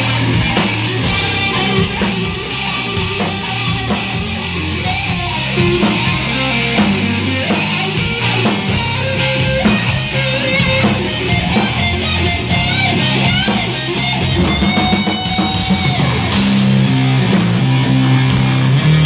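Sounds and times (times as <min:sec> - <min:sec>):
drum kit: 0:00.0 - 0:19.0
electric bass: 0:00.0 - 0:19.0
electric guitar lead: 0:00.0 - 0:19.0.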